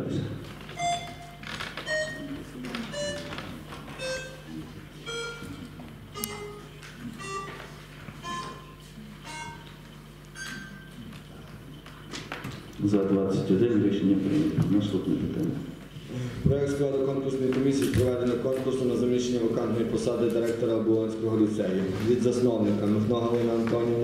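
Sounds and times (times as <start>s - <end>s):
electronic signal notes: 0.7s - 11.0s.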